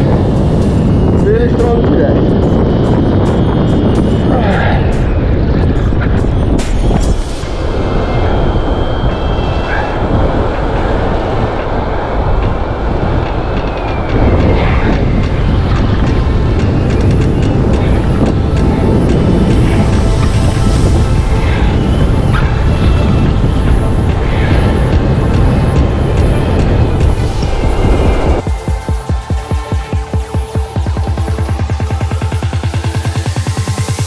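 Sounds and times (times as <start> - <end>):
wind buffeting the microphone: 0.0 - 34.0.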